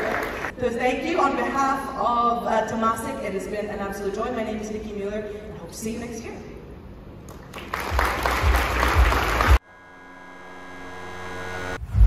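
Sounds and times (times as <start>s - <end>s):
audience applause: 0.0s - 0.5s, 7.3s - 9.6s.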